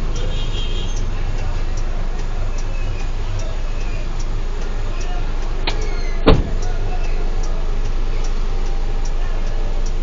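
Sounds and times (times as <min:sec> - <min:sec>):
faint regular ticking: 0:00.0 - 0:10.0
truck engine running low: 0:00.0 - 0:10.0
sharp thump: 0:05.7 - 0:06.6.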